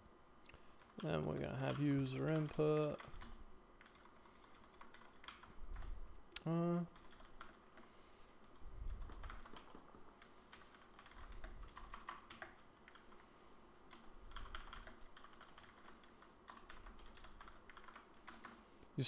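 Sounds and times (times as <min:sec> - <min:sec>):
typing on computer keyboard: 0:00.8 - 0:05.9, 0:07.0 - 0:07.9, 0:08.9 - 0:13.2, 0:13.9 - 0:18.6.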